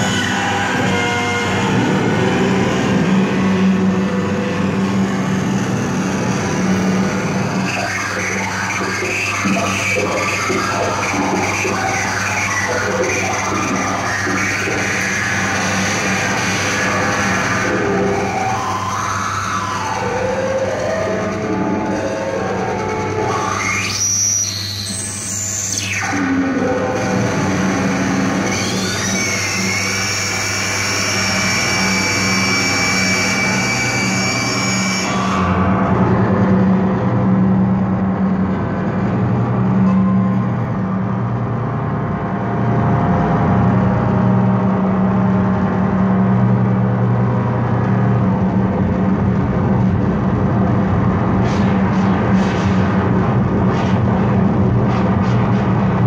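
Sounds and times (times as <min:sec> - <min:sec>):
steady high electronic tones: 0:00.0 - 0:38.4
electronic noise music drone: 0:00.0 - 0:56.0
high sweeping electronic glides: 0:00.0 - 0:56.0
steady low hum: 0:35.1 - 0:56.0.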